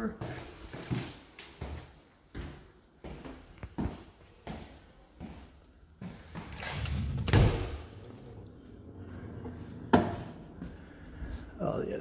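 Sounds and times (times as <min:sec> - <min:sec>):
footsteps: 0:00.0 - 0:11.6
interior door opening: 0:06.2 - 0:10.6.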